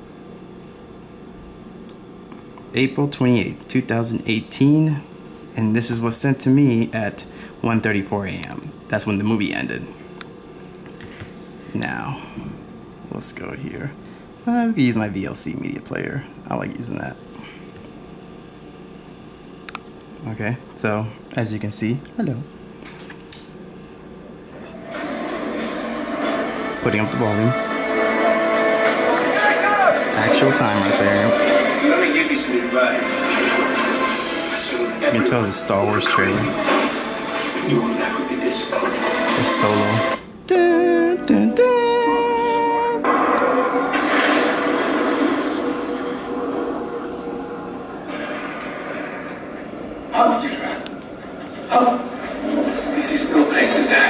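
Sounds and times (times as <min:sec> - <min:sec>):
cinema audio through laptop speakers: 0:21.9 - 0:54.0
loud rushing rumbling sound effect: 0:43.1 - 0:50.2.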